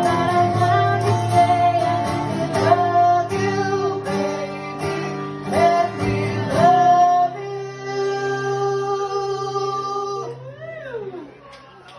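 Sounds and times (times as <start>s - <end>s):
acoustic guitar: 0.0s - 11.8s.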